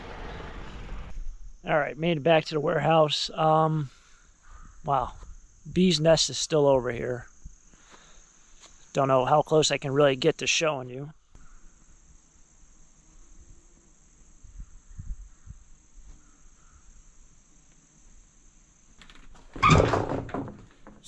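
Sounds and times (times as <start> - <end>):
loud noisy burst: 0.0 - 1.2
crickets chirping: 0.0 - 21.0.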